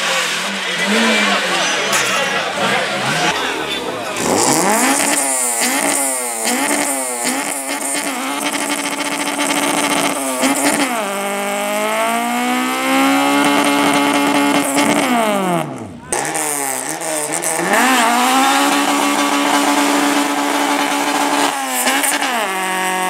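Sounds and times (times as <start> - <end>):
car engine revving: 0.0 - 23.0.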